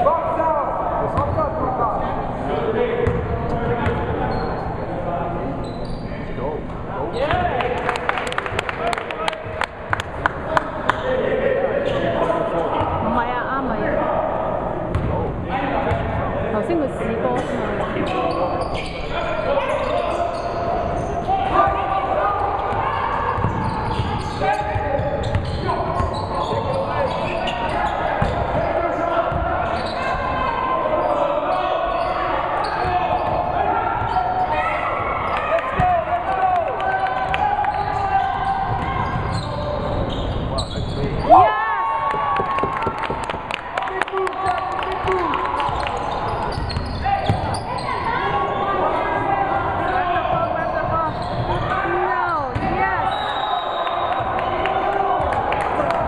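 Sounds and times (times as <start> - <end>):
voices echoing in hall: 0.0 - 56.0.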